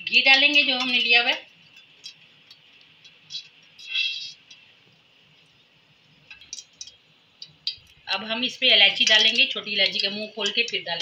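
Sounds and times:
ghee pouring hiss: 0:00.0 - 0:11.0.

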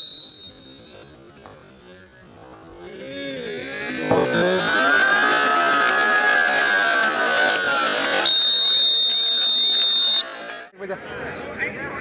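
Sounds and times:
whistle blast: 0:00.0 - 0:01.1, 0:08.2 - 0:10.4.

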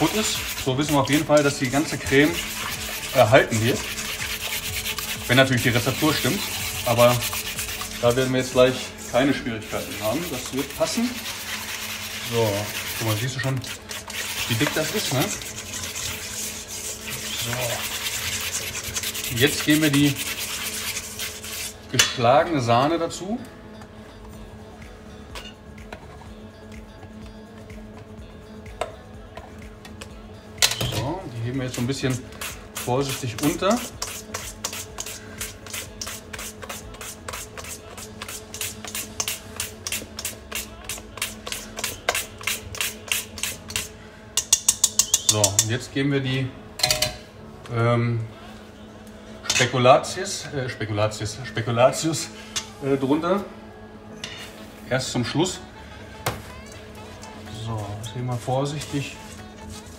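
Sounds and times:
whisk scraping metal bowl: 0:00.0 - 0:21.9, 0:30.9 - 0:45.9.

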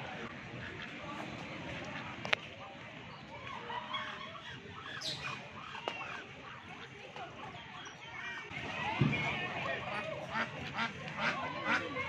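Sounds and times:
distant voices: 0:00.0 - 0:12.0
birds calling: 0:03.9 - 0:08.5.

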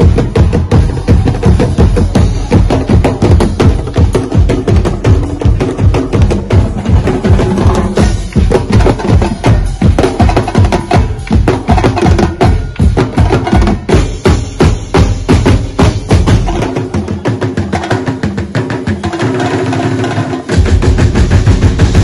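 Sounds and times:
drums and wooden blocks rhythm: 0:00.0 - 0:22.0.

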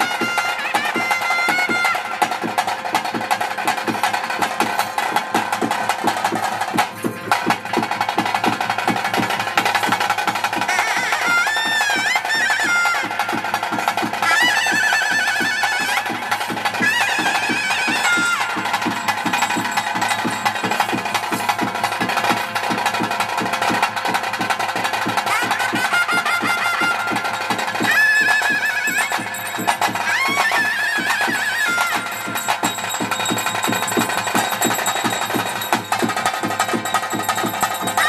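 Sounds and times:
reed pipe melody: 0:00.0 - 0:03.2, 0:05.9 - 0:38.0
double-headed drum beating: 0:00.0 - 0:38.0.

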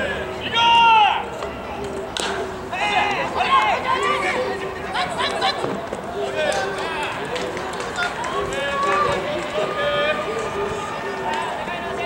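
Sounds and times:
men shouting and calling out: 0:00.0 - 0:01.4, 0:02.7 - 0:12.0.

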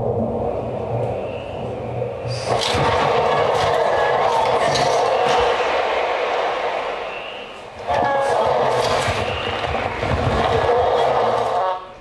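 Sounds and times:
dense electronic noise texture: 0:00.0 - 0:12.0.

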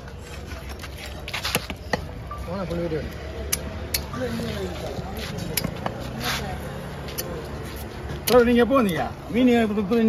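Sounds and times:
background voices talking: 0:00.0 - 0:10.0.

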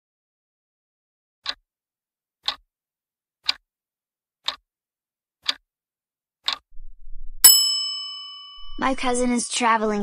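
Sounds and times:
clock tick: 0:01.4 - 0:01.6, 0:02.4 - 0:02.6, 0:03.4 - 0:03.6, 0:04.4 - 0:04.6, 0:05.4 - 0:05.6, 0:06.4 - 0:06.7
bright bell ding: 0:07.4 - 0:09.2.

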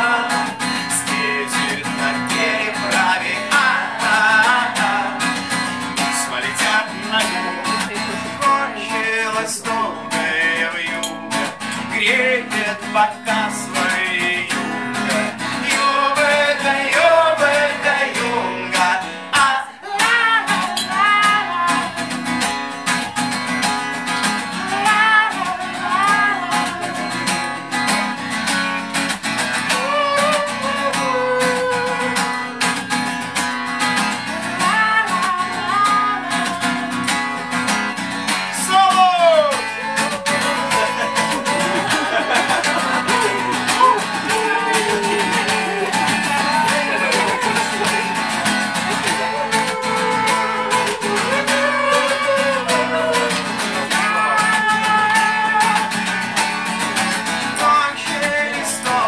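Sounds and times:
man singing: 0:00.0 - 0:22.0, 0:24.5 - 0:27.7, 0:29.5 - 0:32.8, 0:34.2 - 0:37.3, 0:38.4 - 0:59.0
acoustic guitar strumming: 0:00.0 - 0:59.0.

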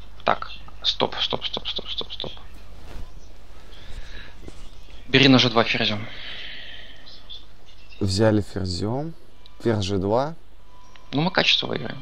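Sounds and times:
faint background hiss: 0:00.0 - 0:12.0
low electrical hum: 0:00.0 - 0:12.0.

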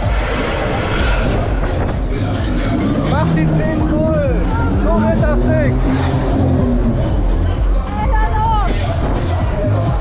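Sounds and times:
fairground ride rushing noise: 0:00.0 - 0:10.0
music with heavy bass: 0:00.0 - 0:10.0.

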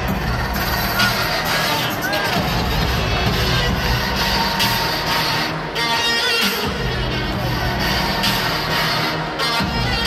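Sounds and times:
music over stadium sound system: 0:00.0 - 0:10.0.

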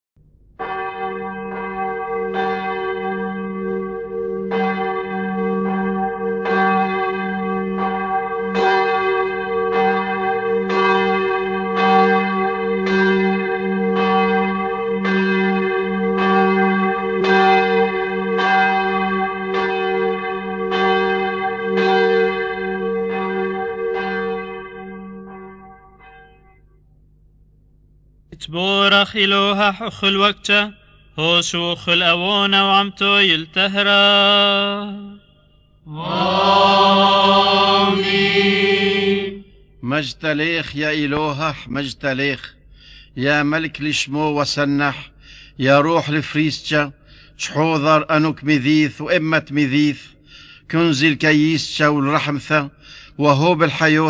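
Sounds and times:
church bells ringing: 0:00.6 - 0:26.8, 0:35.9 - 0:41.4.

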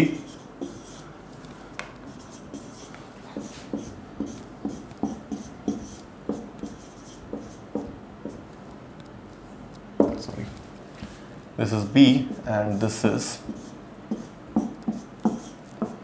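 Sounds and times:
marker pen on whiteboard: 0:00.0 - 0:11.2, 0:12.0 - 0:16.0.

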